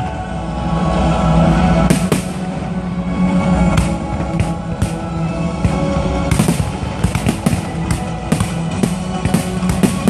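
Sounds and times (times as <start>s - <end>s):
music: 0.0s - 10.0s
fireworks bursting: 1.8s - 2.6s, 3.7s - 10.0s.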